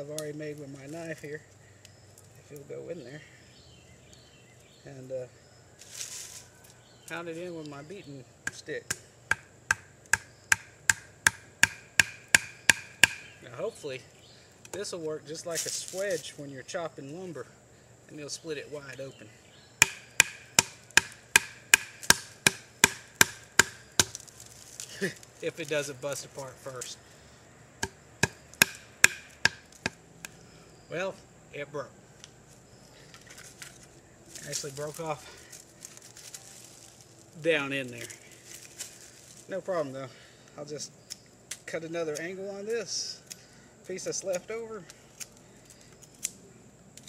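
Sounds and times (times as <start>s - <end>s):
rustling of dry leaves: 0.0s - 7.9s, 13.2s - 19.8s, 20.8s - 27.4s, 32.4s - 40.7s
stick knocking wooden wedge: 8.5s - 13.3s, 19.8s - 24.2s, 27.8s - 30.0s.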